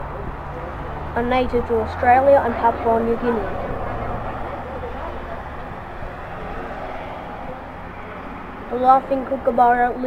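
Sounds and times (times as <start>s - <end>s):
highway traffic rushing: 0.0s - 10.0s.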